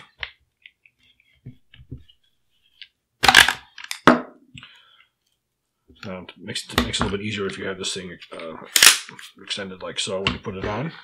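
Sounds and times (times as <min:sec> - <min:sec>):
gun parts clicking and knocking: 0:03.3 - 0:04.1.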